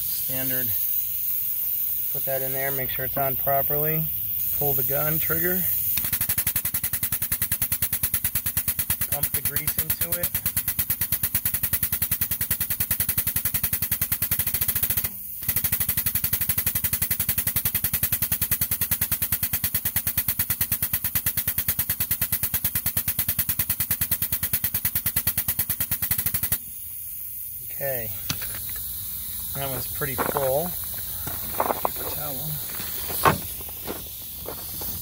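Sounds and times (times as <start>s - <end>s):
pneumatic grease gun clattering: 5.8s - 9.2s, 28.2s - 35.0s.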